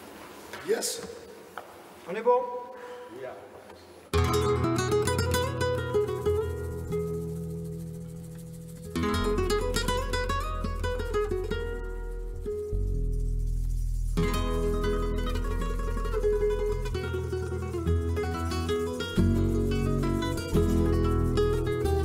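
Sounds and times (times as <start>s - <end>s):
acoustic flamenco guitars: 4.1s - 22.0s.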